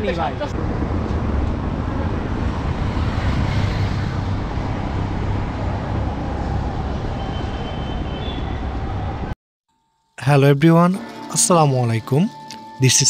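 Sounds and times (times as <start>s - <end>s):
street traffic rumble: 0.0s - 9.4s.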